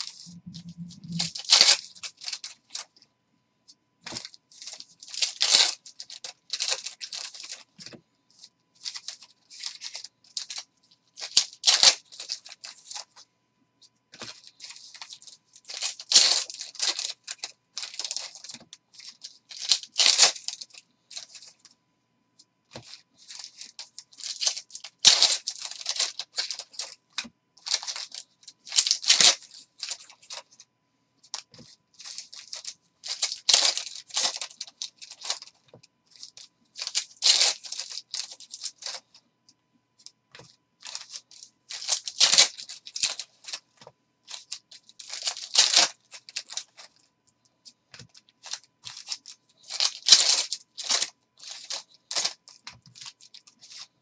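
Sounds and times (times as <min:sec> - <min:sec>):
foil wrappers crinkling and tearing: 0:00.0 - 0:03.0, 0:04.1 - 0:13.2, 0:14.2 - 0:21.6, 0:22.7 - 0:30.6, 0:31.3 - 0:39.1, 0:40.4 - 0:43.7, 0:44.3 - 0:47.0, 0:48.0 - 0:54.0.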